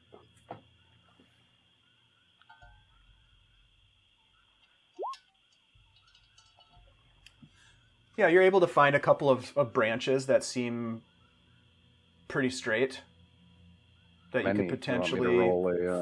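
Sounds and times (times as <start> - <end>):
faint high hum: 0.0 - 16.0.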